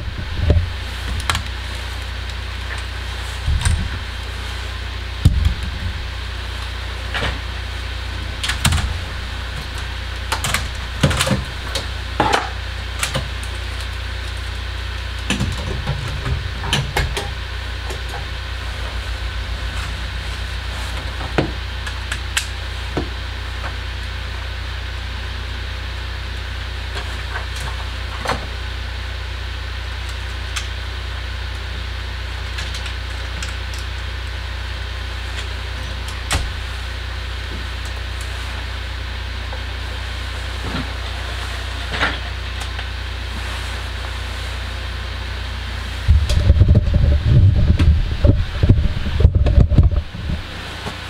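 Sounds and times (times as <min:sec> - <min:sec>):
loud rough rumbling with thumps: 0:00.0 - 0:29.9, 0:30.8 - 0:51.0
steady low hum: 0:00.0 - 0:51.0.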